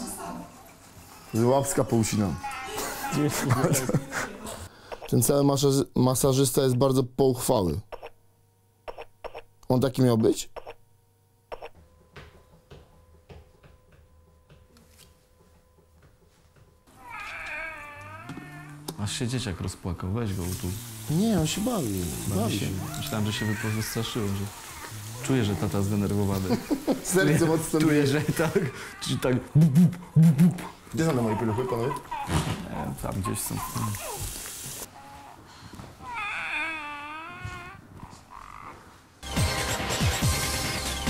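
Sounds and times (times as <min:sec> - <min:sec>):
baby doll recorded crying: 0:16.9 - 0:18.8, 0:31.0 - 0:32.5, 0:36.0 - 0:38.8.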